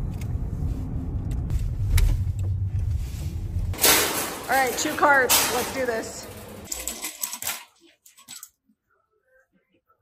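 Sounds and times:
wire shopping cart rattling: 3.8 - 8.5.

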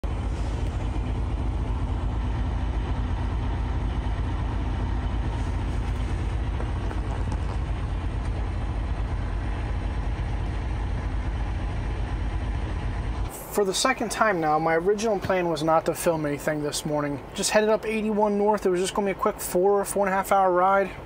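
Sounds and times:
diesel engine low rumble: 0.0 - 21.0.

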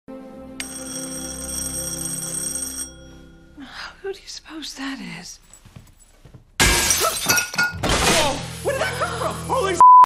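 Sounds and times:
low steady music tone: 0.1 - 4.5
doorbell ringing: 0.6 - 3.5.

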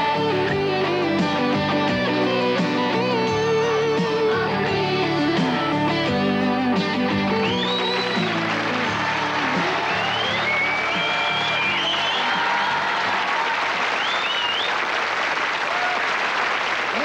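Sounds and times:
pop song: 0.0 - 12.6
audience applauding: 7.2 - 17.0.

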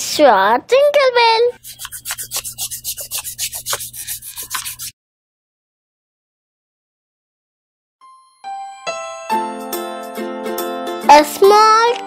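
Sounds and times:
eraser rubbing on paper: 1.6 - 5.0.

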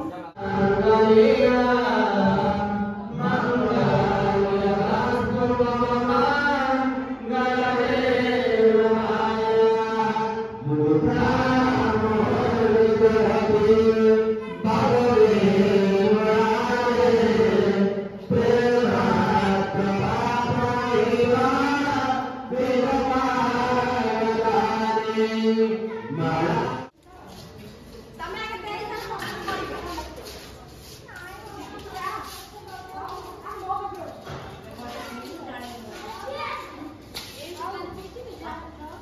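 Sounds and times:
mantra chanting in held notes: 0.3 - 26.9
children and adults talking: 13.3 - 18.8, 24.2 - 39.0.

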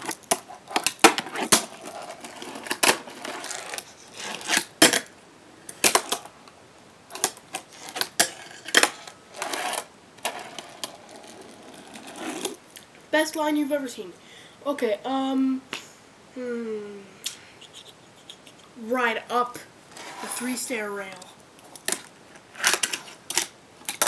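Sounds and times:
fingerboard scraping grinds: 7.7 - 12.6, 20.0 - 20.5.

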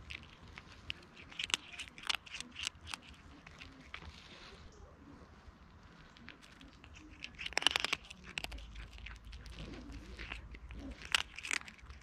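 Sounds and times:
cat crunching dry kibble: 0.0 - 12.0.

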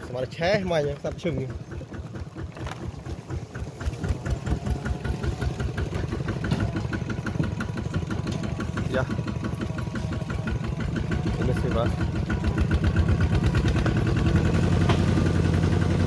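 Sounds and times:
diesel engine chugging under load: 0.0 - 16.0.

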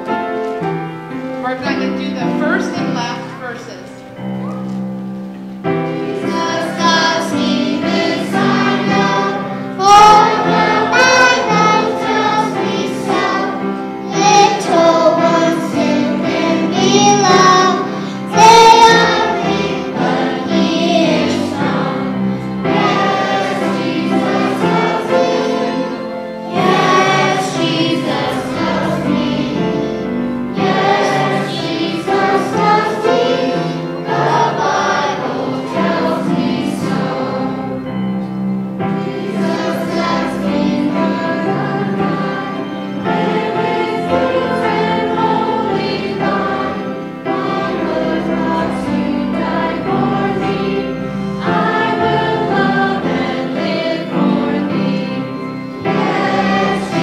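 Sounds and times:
children singing: 5.8 - 38.1, 38.8 - 57.0.

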